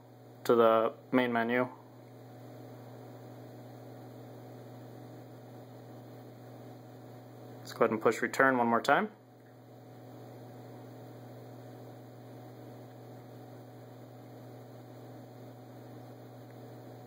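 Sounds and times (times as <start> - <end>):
faint electrical mains hum: 0.0 - 17.0.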